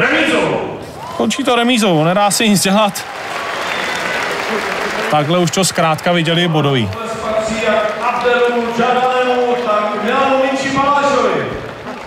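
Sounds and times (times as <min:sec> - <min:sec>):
man announcing over public address: 0:00.0 - 0:03.0, 0:05.1 - 0:11.6.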